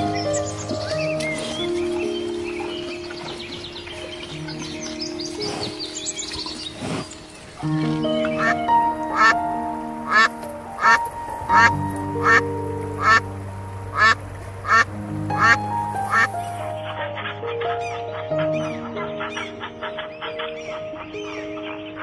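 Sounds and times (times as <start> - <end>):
background music with held notes: 0.0 - 22.0
duck quacking: 8.4 - 9.4, 10.1 - 13.3, 13.9 - 16.4.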